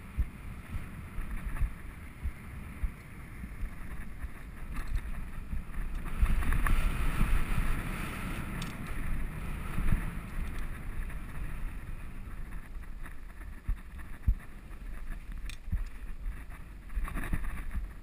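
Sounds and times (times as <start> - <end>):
low rumble: 0.0 - 18.0
wind buffeting microphone: 0.0 - 18.0
bike knocking on trail: 0.1 - 18.0.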